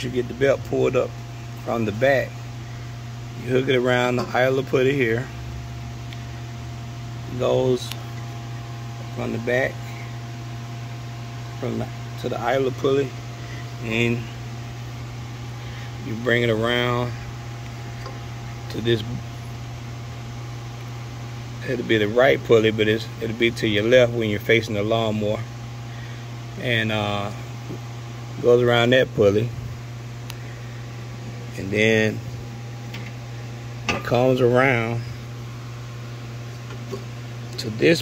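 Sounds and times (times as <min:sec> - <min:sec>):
fan humming with hiss: 0:00.0 - 0:38.0.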